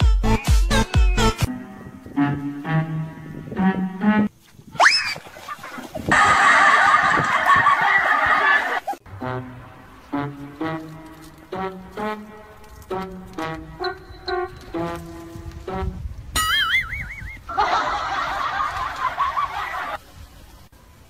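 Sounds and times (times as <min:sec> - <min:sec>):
bouncy brass-like comic music: 0:00.0 - 0:04.3, 0:09.0 - 0:16.8.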